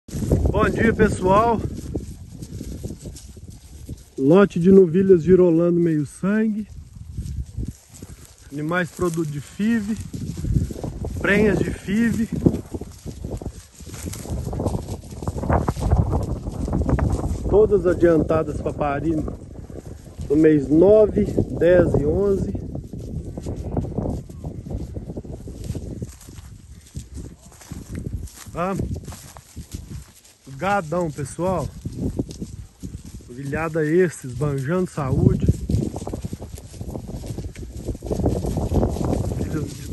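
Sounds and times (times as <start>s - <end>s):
hooves shifting on hard ground: 0.0s - 39.9s
soft hoof steps: 0.0s - 39.9s
cattle tearing dry grass: 0.1s - 39.9s.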